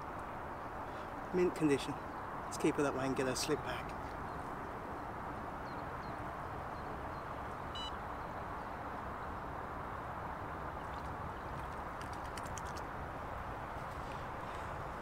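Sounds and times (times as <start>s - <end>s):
lakeside background noise: 0.0s - 15.0s
faint clicks: 10.9s - 12.9s.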